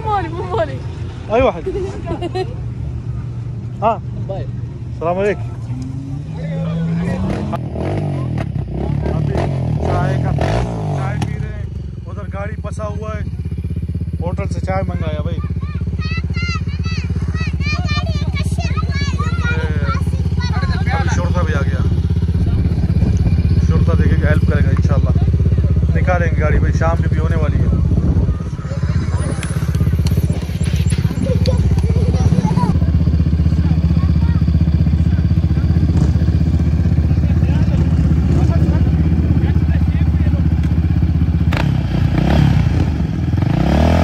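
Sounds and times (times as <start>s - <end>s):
car engine rumbling: 0.0s - 44.0s.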